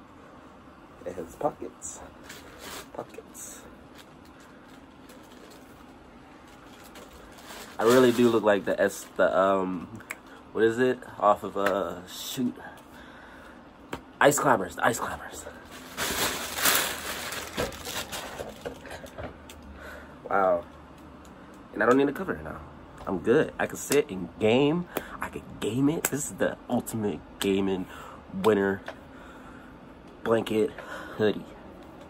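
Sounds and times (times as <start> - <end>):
fabric rustling: 15.6 - 18.6.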